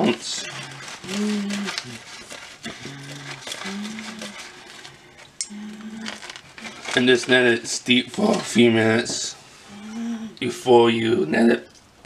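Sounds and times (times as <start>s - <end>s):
dry hops crackling: 0.0s - 9.4s
person humming: 0.4s - 4.5s, 5.4s - 6.3s, 9.7s - 10.4s.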